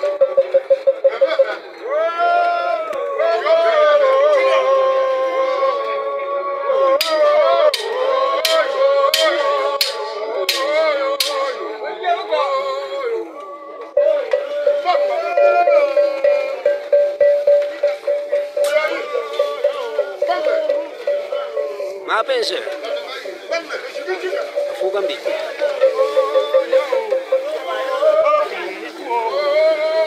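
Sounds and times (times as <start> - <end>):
live dance music with singing: 6.8 - 30.0
sharp percussion strikes: 7.0 - 11.6, 14.0 - 28.0.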